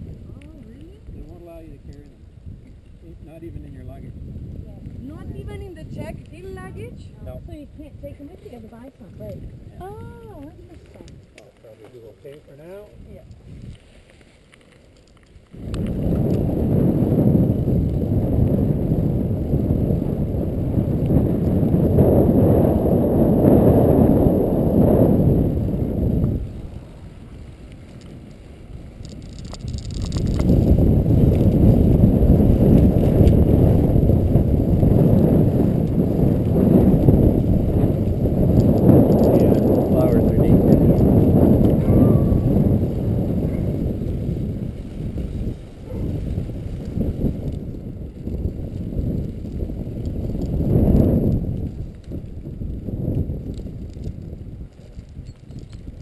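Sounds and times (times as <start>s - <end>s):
wind buffeting microphone: 0.0s - 56.0s
tyre rumble over paving stones: 8.0s - 18.2s, 25.2s - 56.0s.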